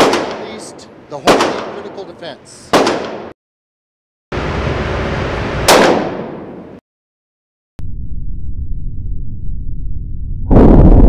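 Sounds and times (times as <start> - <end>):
gunshot with ringing decay: 0.0 - 2.0, 2.7 - 3.3, 5.7 - 6.6.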